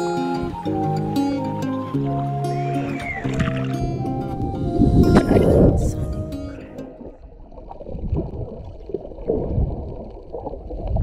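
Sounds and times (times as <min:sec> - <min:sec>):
muffled underwater gurgling: 0:00.2 - 0:11.0.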